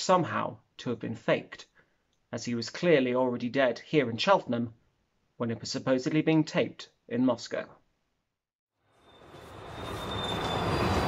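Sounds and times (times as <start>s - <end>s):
passing train rumble: 9.1s - 11.0s.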